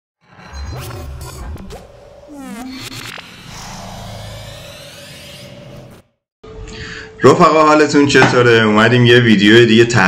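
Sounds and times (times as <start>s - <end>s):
low hum: 1.2s - 7.0s
noisy whoosh: 1.7s - 6.2s.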